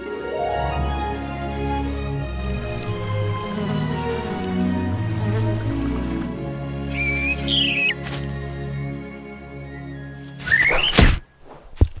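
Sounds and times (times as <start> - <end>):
orchestral film music: 0.0 - 11.0
cartoon bird chirping: 6.9 - 8.0.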